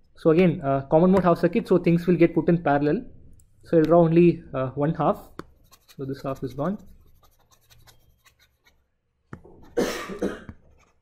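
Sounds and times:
stylus tapping tablet screen: 5.3 - 9.8
person coughing: 9.7 - 10.6.

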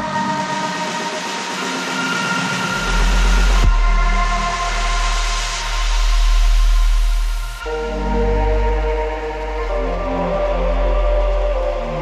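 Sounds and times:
deep bass: 2.8 - 12.0.

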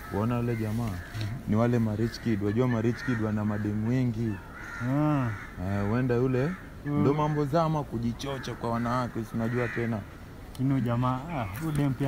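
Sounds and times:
man calling with drawn-out vowels: 0.0 - 10.1.

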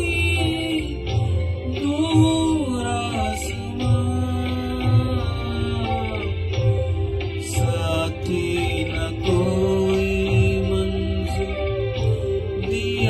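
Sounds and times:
karaoke backing track: 0.0 - 13.0
man singing into a microphone: 0.0 - 13.0.

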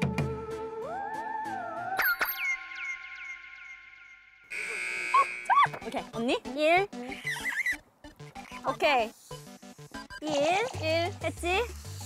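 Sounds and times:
loud buzzer-like tone: 4.5 - 5.7.

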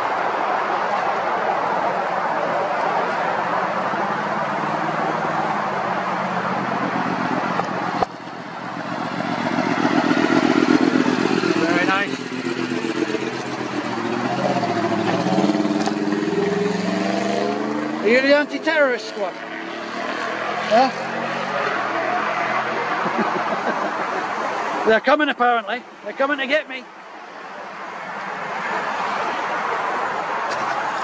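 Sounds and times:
outdoor background noise: 0.0 - 31.0
engine passing by: 1.6 - 24.8.

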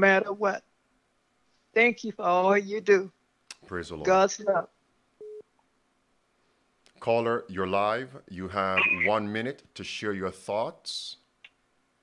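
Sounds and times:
short phone beep: 5.2 - 5.4, 8.8 - 9.1.

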